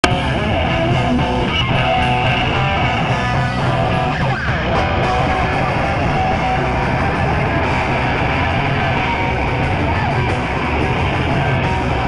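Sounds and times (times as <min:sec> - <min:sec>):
distorted electric guitar: 0:00.0 - 0:12.0
punk rock band playing: 0:00.0 - 0:12.0.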